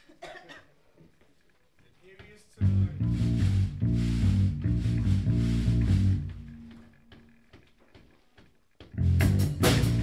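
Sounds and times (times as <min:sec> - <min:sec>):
person coughing: 0:00.0 - 0:00.8.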